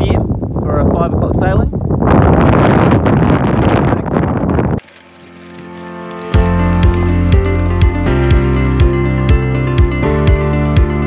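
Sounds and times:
wind buffeting microphone: 0:00.0 - 0:04.8
music with heavy bass beat: 0:06.4 - 0:11.0.

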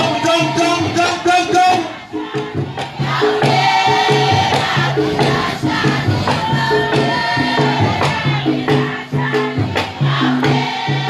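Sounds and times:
group of voices chanting: 0:00.0 - 0:11.0
hand percussion beat: 0:00.0 - 0:11.0.

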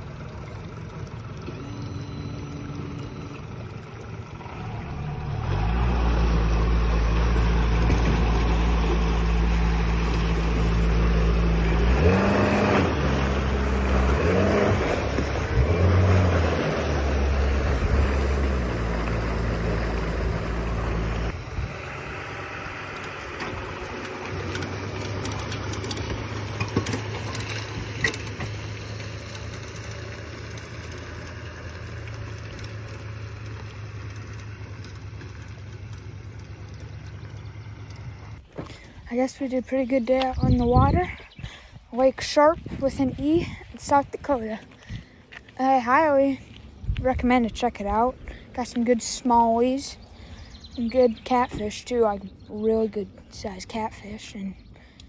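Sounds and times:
outboard motor running: 0:00.0 - 0:38.8
truck engine hum: 0:00.0 - 0:55.0.

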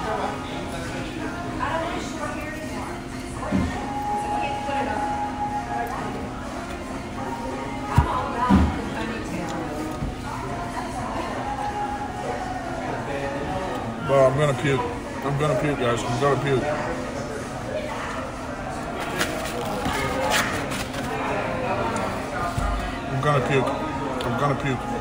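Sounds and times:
diners talking: 0:00.0 - 0:25.0.

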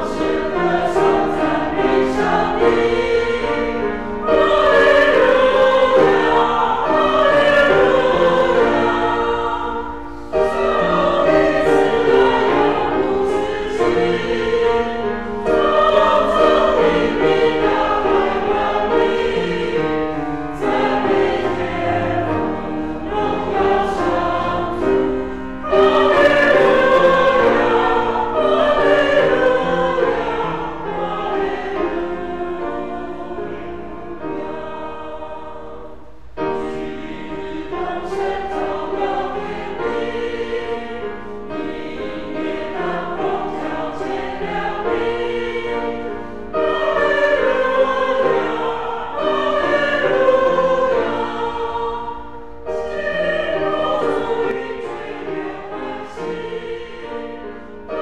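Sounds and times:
congregation singing a hymn: 0:00.0 - 0:58.0.

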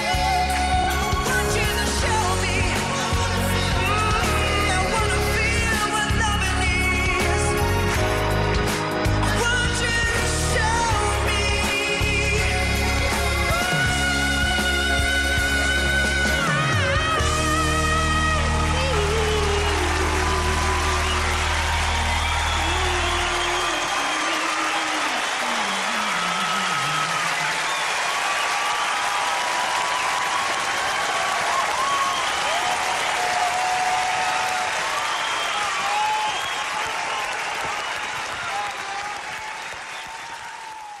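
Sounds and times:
audience applauding and cheering: 0:00.0 - 0:41.0.

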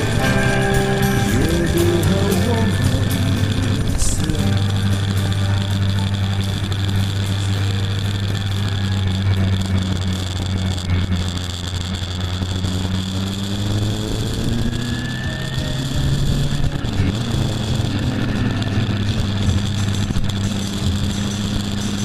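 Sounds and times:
motorcycle engine running: 0:00.0 - 0:22.0
wind and road noise: 0:00.0 - 0:22.0.

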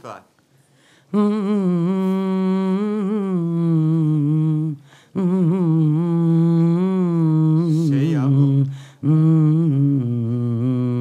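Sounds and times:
woman humming into microphone: 0:01.1 - 0:11.0.

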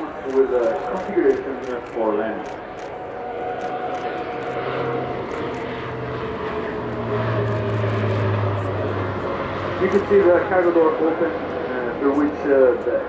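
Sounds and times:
propeller aircraft drone: 0:00.0 - 0:13.0.

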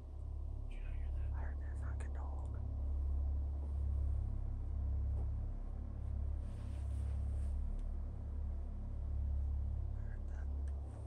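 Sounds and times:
steady low rumble: 0:00.0 - 0:11.0
person whispering: 0:00.7 - 0:02.6, 0:09.9 - 0:10.7.

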